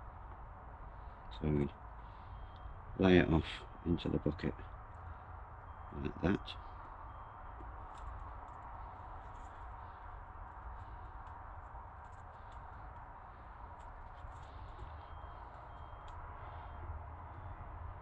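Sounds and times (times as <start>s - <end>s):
low background hum: 0.0s - 18.0s.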